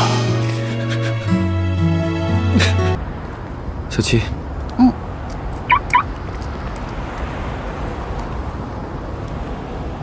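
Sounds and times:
high-pitched chirps: 5.7s - 6.1s.

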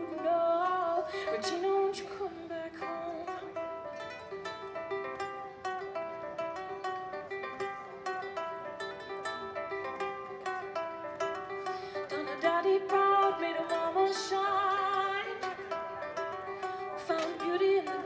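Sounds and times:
plucked stringed instrument melody: 0.0s - 18.0s.

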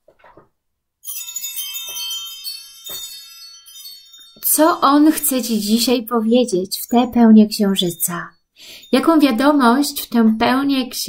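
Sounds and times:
metal chimes ringing: 1.0s - 10.5s.

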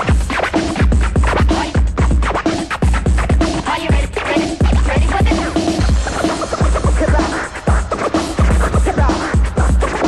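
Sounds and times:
electronic dance music: 0.0s - 10.0s
turntable scratching: 0.0s - 10.0s.

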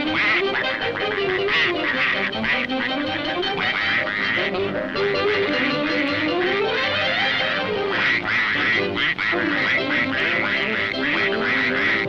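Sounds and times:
cartoon duck quacking: 0.0s - 12.0s
orchestral music: 0.0s - 12.0s.

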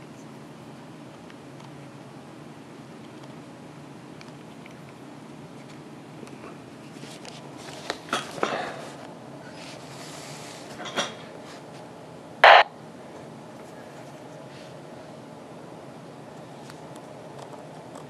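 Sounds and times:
burst of radio noise: 12.4s - 12.7s
button clicks: 12.4s - 12.7s
radio handling noise: 12.4s - 12.7s.

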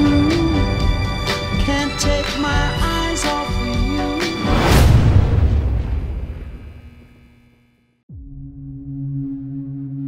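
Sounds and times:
rising swell of music: 0.0s - 5.1s
deep trailer boom: 4.4s - 7.0s.

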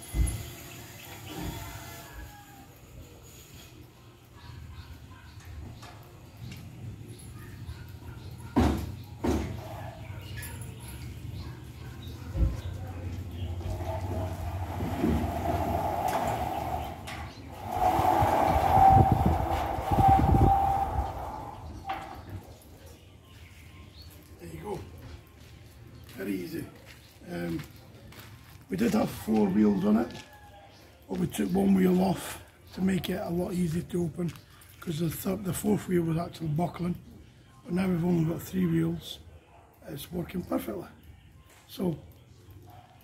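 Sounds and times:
gate wheels rolling on metal rail: 11.0s - 22.4s.

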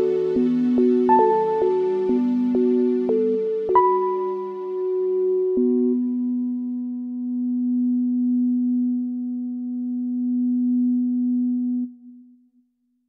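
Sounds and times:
low electronic tone: 0.0s - 12.3s.

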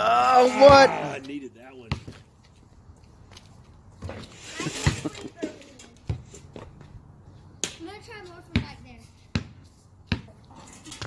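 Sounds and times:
basketball bouncing on asphalt: 1.8s - 2.4s, 6.0s - 7.0s, 7.6s - 10.5s.

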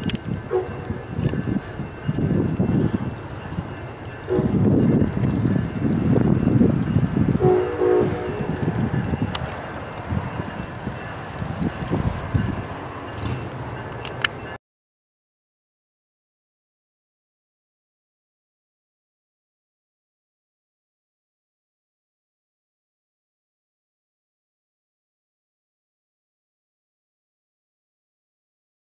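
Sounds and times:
train rumble: 0.0s - 14.6s
train horn blasts: 0.5s - 1.1s, 4.3s - 4.7s, 7.4s - 8.8s.

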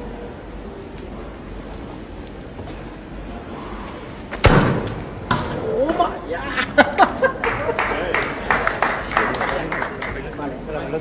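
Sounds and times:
loud echoing thump: 4.4s - 5.6s.

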